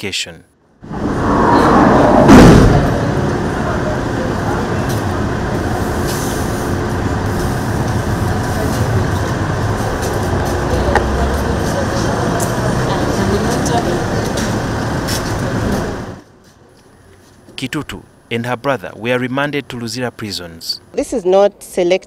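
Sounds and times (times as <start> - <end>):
crowd talking: 2.7 - 16.2.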